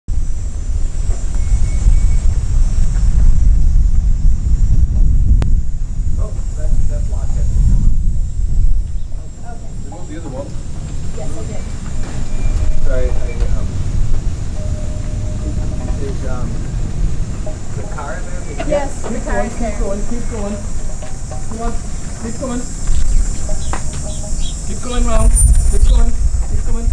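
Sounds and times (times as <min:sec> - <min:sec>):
low uneven rumble: 0:00.2 - 0:26.9.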